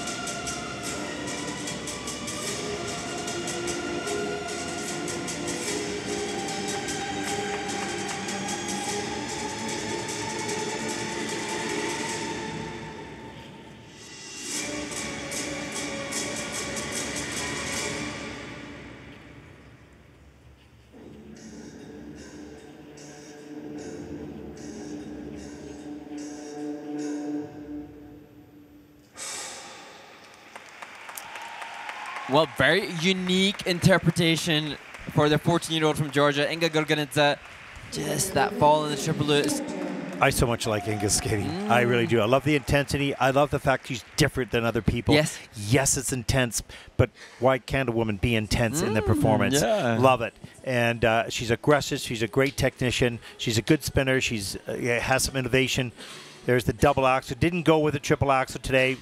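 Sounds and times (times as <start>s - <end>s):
audience applause: 30.3s - 45.4s.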